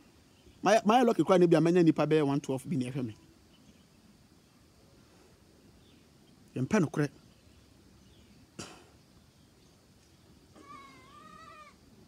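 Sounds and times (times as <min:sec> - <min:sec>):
faint animal cry: 0:10.5 - 0:12.0.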